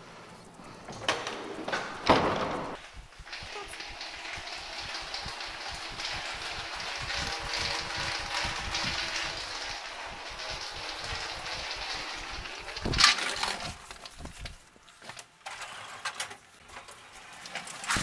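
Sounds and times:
suitcase wheels rattling on tiles: 0.6s - 18.0s.

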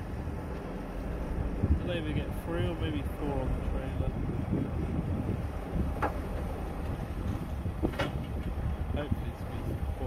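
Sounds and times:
engine running: 0.0s - 10.0s
wind buffeting microphone: 0.0s - 10.0s.

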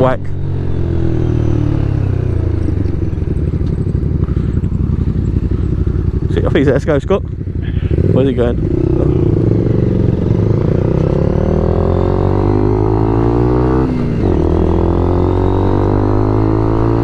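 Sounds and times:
motorcycle engine accelerating: 0.0s - 17.0s.

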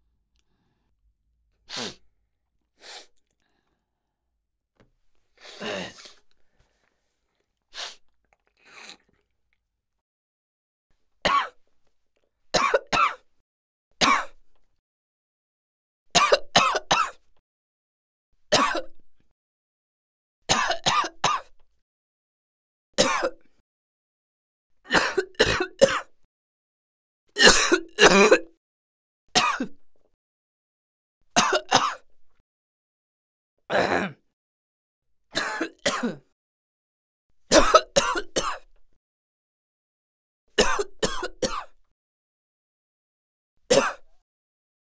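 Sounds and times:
person coughing: 23.0s - 23.4s, 24.9s - 26.1s, 27.4s - 28.5s, 29.4s - 29.7s, 33.7s - 34.2s, 35.4s - 36.3s, 37.5s - 38.7s, 40.6s - 41.7s, 43.7s - 44.1s.

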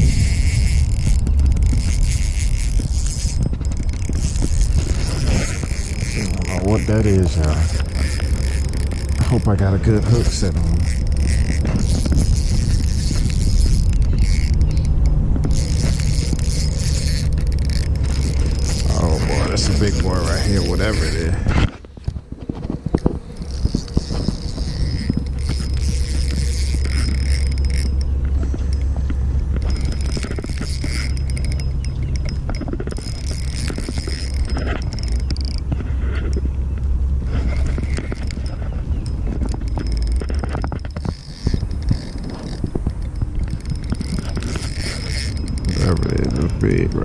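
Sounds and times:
fishing reel clicking and scraping: 0.0s - 47.0s
low rumble: 0.0s - 47.0s.

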